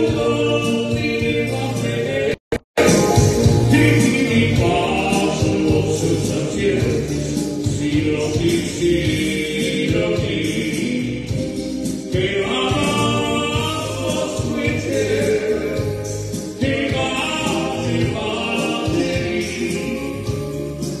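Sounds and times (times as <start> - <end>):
electronic keyboard: 0.0 - 21.0
man singing into microphone: 0.0 - 21.0.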